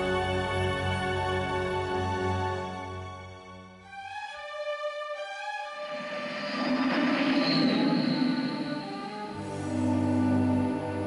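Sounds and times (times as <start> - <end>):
soft orchestral music: 0.0 - 11.0
high squealing tone: 5.9 - 10.4.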